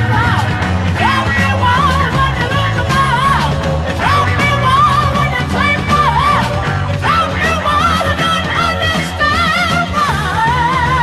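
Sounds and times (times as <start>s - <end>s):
high singing voice: 0.0s - 11.0s
rock band with bass and drums: 0.0s - 11.0s.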